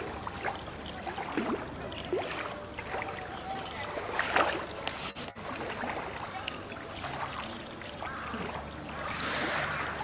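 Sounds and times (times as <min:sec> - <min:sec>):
water splashing and sloshing: 0:00.0 - 0:10.0.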